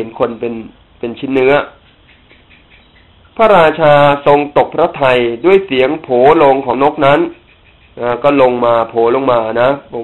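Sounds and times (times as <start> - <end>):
man speaking: 0.0 - 1.8, 3.4 - 7.4, 8.0 - 10.0.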